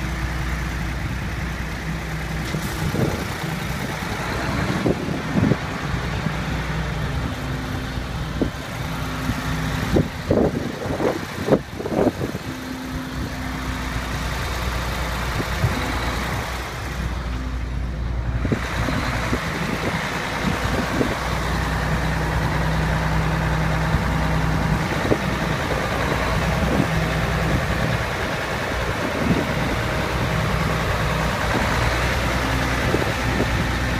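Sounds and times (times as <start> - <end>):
diesel truck engine idling: 0.0 - 33.9
traffic hiss: 0.0 - 33.9.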